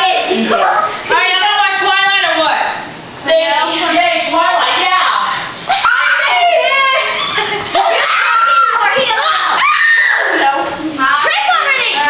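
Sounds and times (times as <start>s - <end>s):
girls shrieking and talking: 4.7s - 12.0s.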